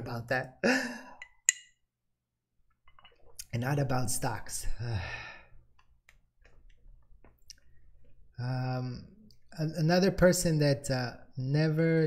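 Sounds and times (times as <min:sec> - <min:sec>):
man sighing: 0:00.6 - 0:01.3.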